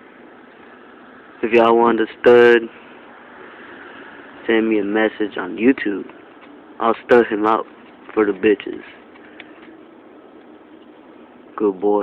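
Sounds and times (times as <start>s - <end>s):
faint hum: 0.0s - 12.0s
outdoor background noise: 0.0s - 12.0s.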